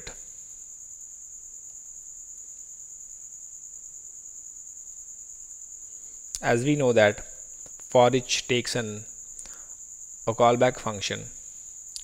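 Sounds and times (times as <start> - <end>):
low background hiss: 0.0 - 12.0
steady high-pitched whine: 0.0 - 12.0
speech: 6.4 - 7.3, 7.9 - 9.1, 10.3 - 11.4.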